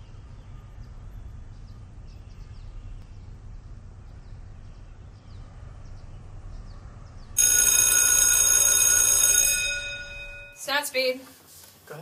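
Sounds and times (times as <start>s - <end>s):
electric school bell ringing: 7.4s - 10.9s.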